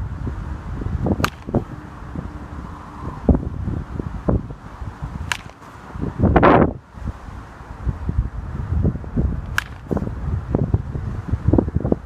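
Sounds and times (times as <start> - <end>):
low rumbling microphone noise: 0.0 - 12.0.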